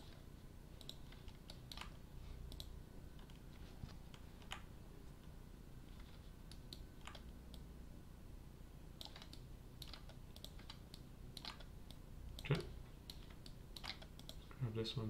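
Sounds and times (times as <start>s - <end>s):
keyboard clicks: 0.8s - 5.3s, 6.0s - 7.7s, 9.0s - 14.5s
computer mouse clicks: 0.8s - 7.7s, 9.0s - 14.6s.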